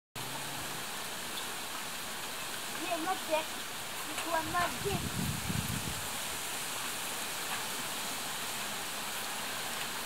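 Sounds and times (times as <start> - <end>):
outdoor background hiss: 0.2 - 10.0.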